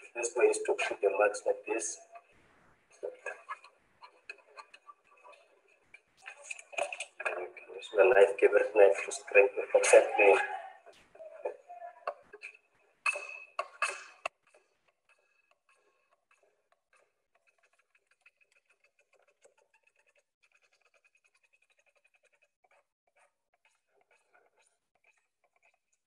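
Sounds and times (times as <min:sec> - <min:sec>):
knife scraping plastic pipe: 0:12.4 - 0:26.0.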